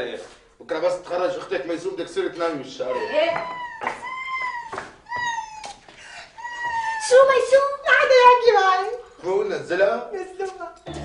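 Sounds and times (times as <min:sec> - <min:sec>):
woman crying high-pitched: 0:03.0 - 0:07.4.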